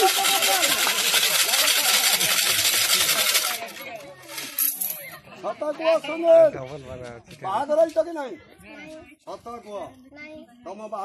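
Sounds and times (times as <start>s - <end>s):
coins rattling in metal tin: 0.0s - 5.2s
light coin clinks: 3.4s - 5.2s.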